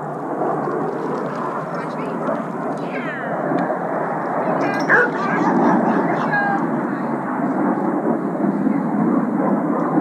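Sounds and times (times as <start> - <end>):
steady background rumble: 1.6 - 10.0.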